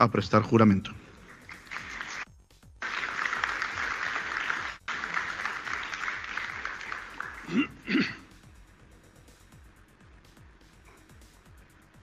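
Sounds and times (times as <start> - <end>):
audience applauding: 1.2 - 8.1.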